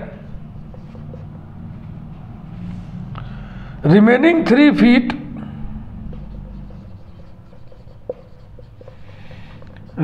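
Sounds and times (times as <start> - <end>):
marker pen writing on whiteboard: 0.0 - 3.0, 4.4 - 10.0.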